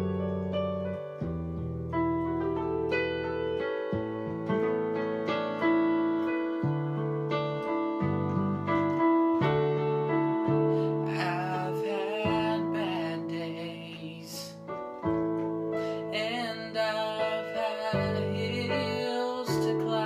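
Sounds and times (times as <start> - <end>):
keyboard playing gospel chords: 0.0 - 20.0.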